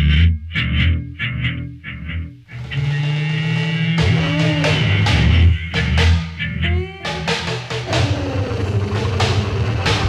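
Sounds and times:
drum hits: 3.5 - 6.4, 7.0 - 10.0.

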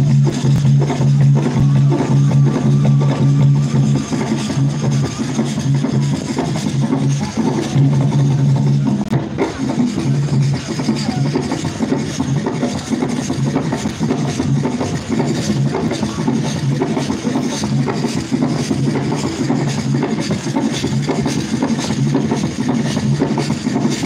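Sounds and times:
loud drum-led music: 0.0 - 24.0.

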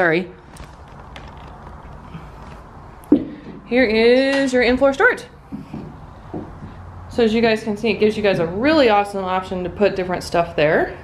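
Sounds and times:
faint creaks: 0.4 - 3.6
handling noise: 0.4 - 3.6.

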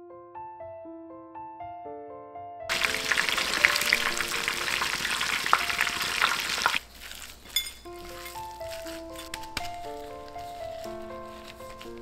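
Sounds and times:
food deep-frying in hot oil: 2.7 - 7.4.

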